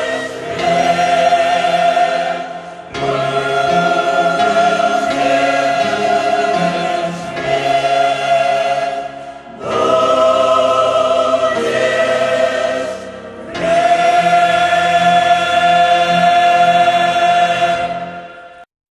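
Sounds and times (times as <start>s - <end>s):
mixed choir singing a hymn: 0.0s - 18.6s.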